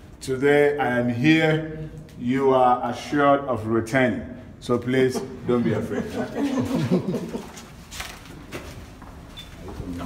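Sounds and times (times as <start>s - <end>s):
man laughing: 5.5s - 7.7s.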